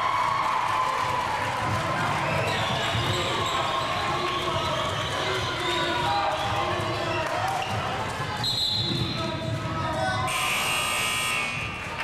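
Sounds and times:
referee's whistle blasts: 8.4s - 9.2s, 10.3s - 11.8s.

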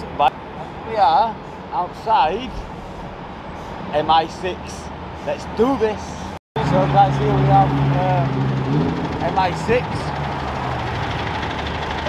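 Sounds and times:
road traffic: 0.0s - 12.0s
bus engine idling: 9.2s - 12.0s.

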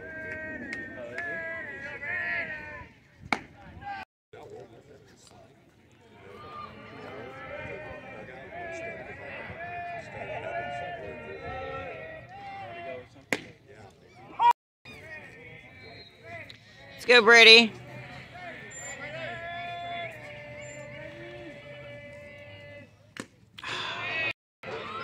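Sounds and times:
faint crowd voices: 0.0s - 25.0s
baseball crack: 3.2s - 3.7s, 13.1s - 13.6s, 22.5s - 23.8s.

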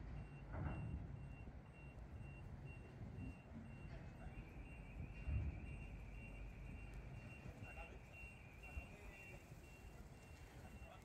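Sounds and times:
forklift reversing alarm beeps: 0.0s - 11.0s.

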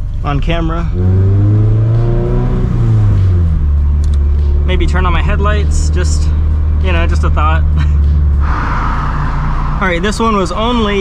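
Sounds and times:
car engine drone: 0.0s - 11.0s
road noise inside car: 0.0s - 11.0s.

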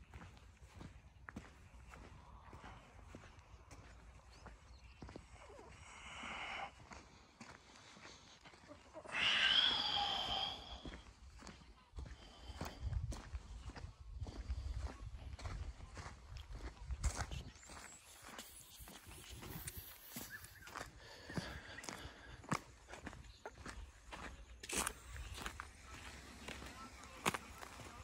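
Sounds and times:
footsteps on gravel and leaves: 17.6s - 28.0s.

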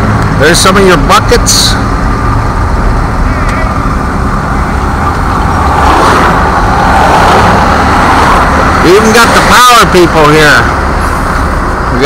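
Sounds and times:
truck engine and road rumble: 0.0s - 12.0s.

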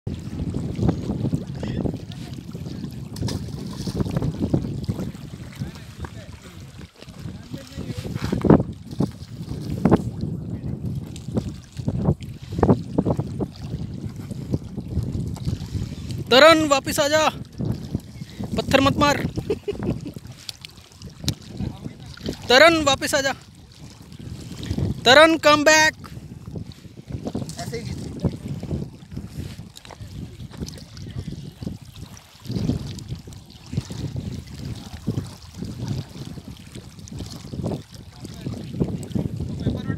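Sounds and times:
wind rumbling on microphone: 0.0s - 39.9s
waves lapping on stony shore: 0.1s - 39.9s.

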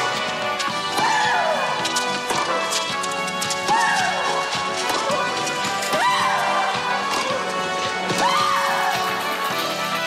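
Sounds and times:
horse hooves clip-clopping: 0.0s - 10.0s
music from television: 0.0s - 10.0s.

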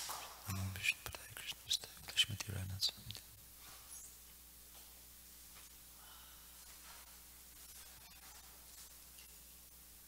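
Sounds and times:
person whispering: 0.5s - 3.4s.

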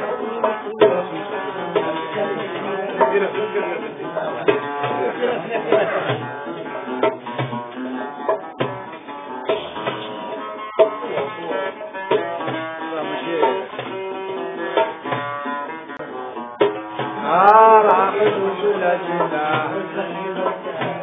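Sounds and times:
plucked lute notes: 0.0s - 21.0s.

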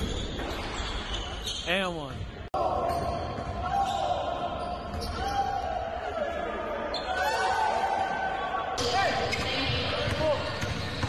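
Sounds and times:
voices echoing in a hall: 1.6s - 11.0s.

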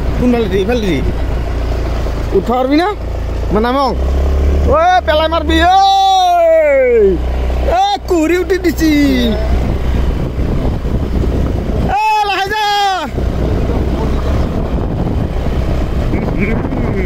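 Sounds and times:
wind buffeting microphone: 0.0s - 3.4s, 7.9s - 17.0s
motorbike engine drone: 0.0s - 17.0s
person calling out: 4.8s - 9.6s, 11.9s - 13.2s.

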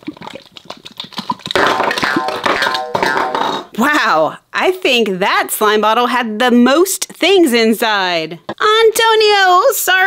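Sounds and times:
slime squelching and popping: 0.0s - 3.7s
bright music with held tones: 1.6s - 3.7s.

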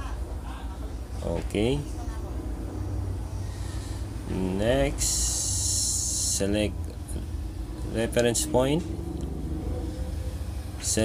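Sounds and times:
low background rumble and hum: 0.0s - 11.0s.

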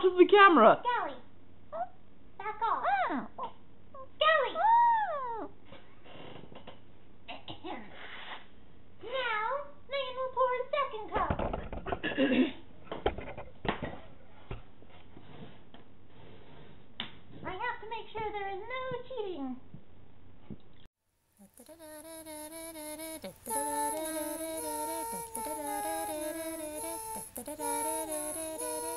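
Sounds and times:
high squeaky wordless voice: 1.0s - 5.6s, 21.4s - 28.9s.

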